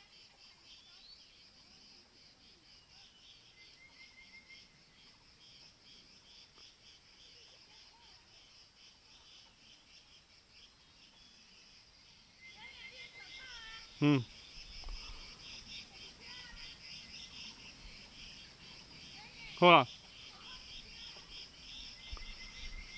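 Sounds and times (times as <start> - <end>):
chorus of chirring insects: 0.0 - 22.9.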